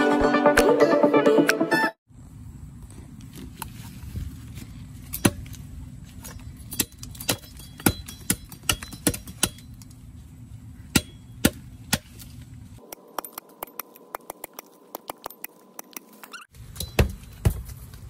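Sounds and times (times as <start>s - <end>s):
blade chopping bamboo: 6.8s - 9.7s, 10.9s - 15.5s.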